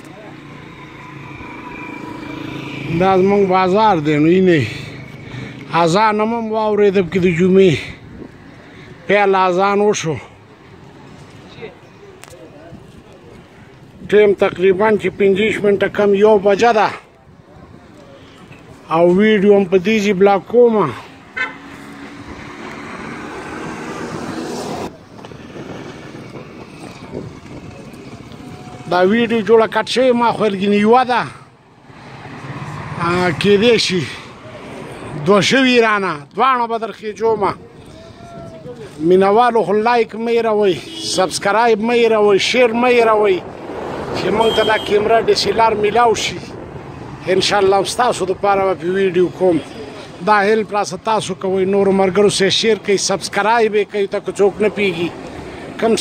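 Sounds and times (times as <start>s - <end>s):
passing vehicle engine: 0.0s - 7.4s, 19.7s - 35.8s, 42.0s - 50.3s
street traffic noise: 0.0s - 56.0s.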